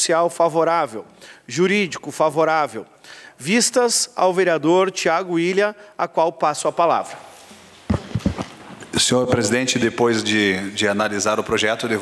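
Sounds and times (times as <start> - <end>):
faint room hiss: 0.0 - 12.0
quick knocks: 7.9 - 8.6.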